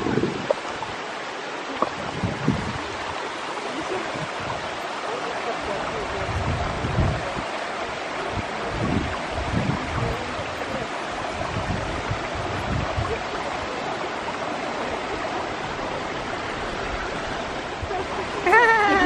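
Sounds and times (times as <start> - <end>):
waterfall rushing: 0.0 - 19.0
wind rumbling on microphone: 0.0 - 19.0.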